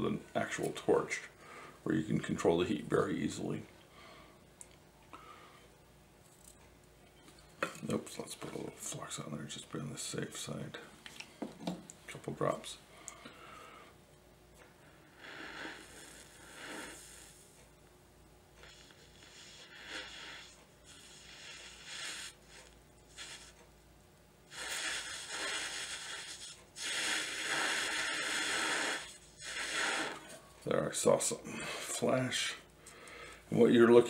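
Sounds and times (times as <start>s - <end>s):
breath blown through blowpipe: 15.0s - 17.4s, 18.6s - 23.6s, 24.5s - 30.4s.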